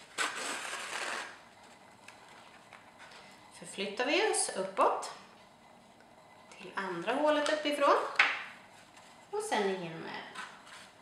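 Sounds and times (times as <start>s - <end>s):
paper rustling: 0.0s - 3.3s, 10.3s - 11.0s.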